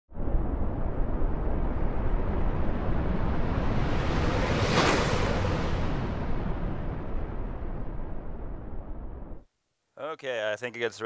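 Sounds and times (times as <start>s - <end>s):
deep cinematic rumble: 0.1s - 9.4s.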